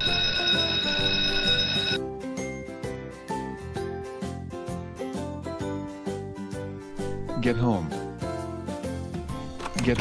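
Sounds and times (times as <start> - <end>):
school bell ringing: 0.0 - 2.0
light children's music: 0.0 - 10.0.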